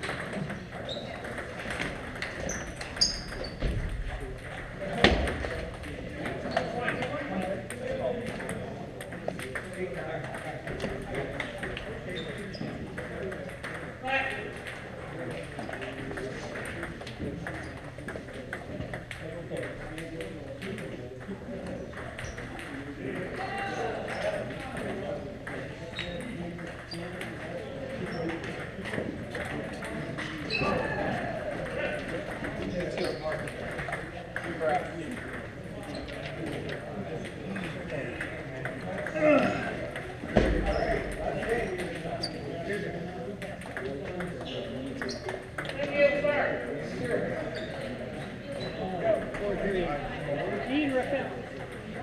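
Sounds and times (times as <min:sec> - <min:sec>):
table tennis balls clicking: 0:00.0 - 0:45.8, 0:46.8 - 0:52.0
indistinct chatter: 0:00.0 - 0:52.0.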